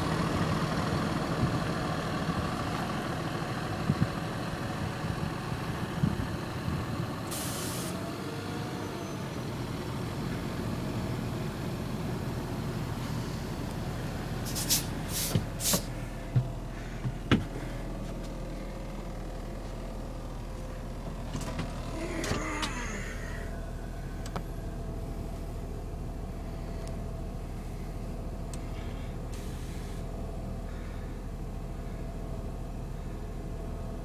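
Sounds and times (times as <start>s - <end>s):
diesel bus engine idling: 0.0s - 34.0s.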